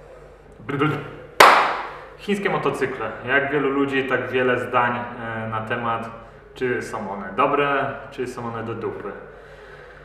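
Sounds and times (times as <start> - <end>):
sharp hand clap: 1.4 - 2.0.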